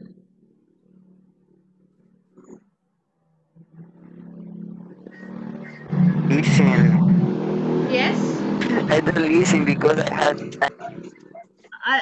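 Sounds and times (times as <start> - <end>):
person speaking: 7.9 - 12.0.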